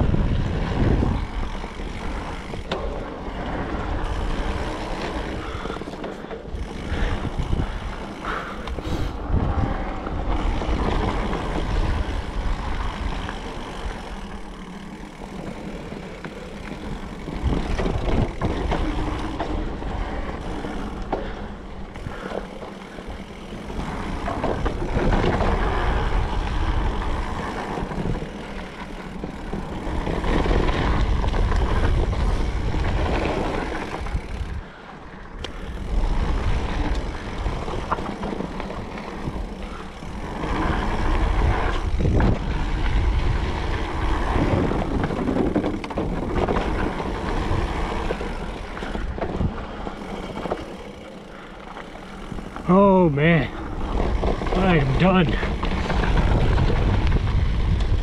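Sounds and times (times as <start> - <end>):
wind rushing over microphone: 0.0 - 2.7, 6.6 - 14.0, 35.4 - 50.0, 52.3 - 58.0
tyre noise on dirt: 0.0 - 34.6, 35.5 - 58.0
bike clicks and rattles: 0.0 - 58.0.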